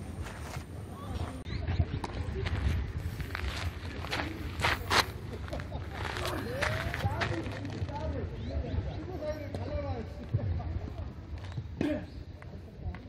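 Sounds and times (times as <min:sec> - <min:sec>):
footsteps: 0:00.0 - 0:08.2.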